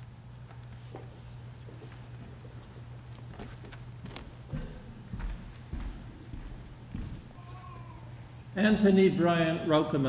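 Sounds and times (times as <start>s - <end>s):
low steady hum: 0.0s - 10.0s
hard-soled footsteps on stage floor: 0.4s - 7.7s.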